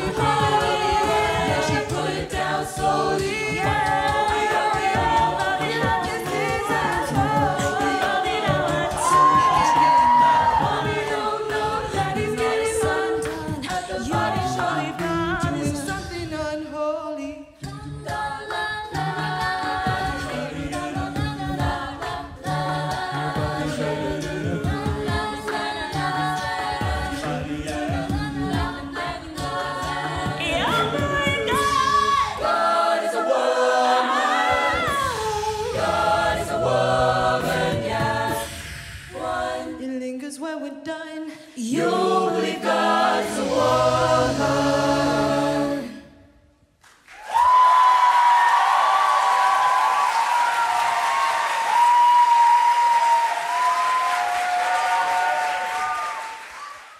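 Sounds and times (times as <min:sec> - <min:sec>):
female lead singing: 0:00.0 - 0:16.4, 0:17.6 - 0:38.5
beatboxing: 0:00.0 - 0:32.4
choral backing vocals: 0:00.0 - 0:56.9.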